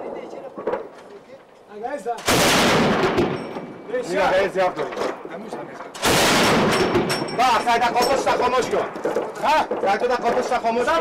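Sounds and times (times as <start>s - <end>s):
loud close gunfire: 2.2s - 5.2s, 6.0s - 9.9s
faint gunshots: 2.2s - 5.4s, 6.0s - 7.4s
voices: 6.7s - 11.0s.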